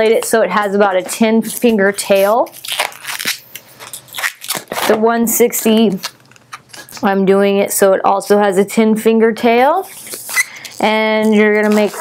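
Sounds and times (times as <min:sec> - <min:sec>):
rubber balloon rubbing and crackling: 0:09.9 - 0:12.0.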